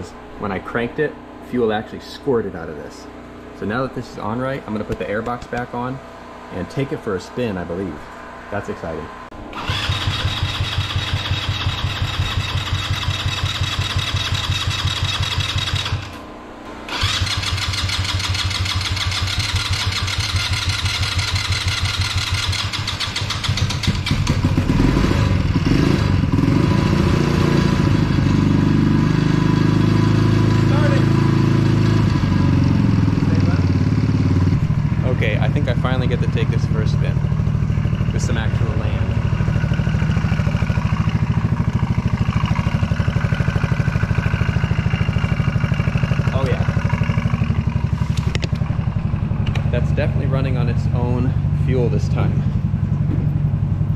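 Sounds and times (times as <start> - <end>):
go-kart engine running: 9.4 - 16.2, 16.9 - 53.9
engine starter cranking: 9.5 - 16.2, 16.9 - 24.6.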